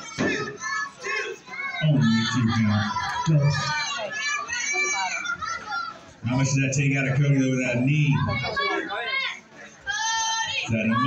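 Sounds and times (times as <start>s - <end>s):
children yelling: 0.0s - 6.1s, 8.2s - 11.0s.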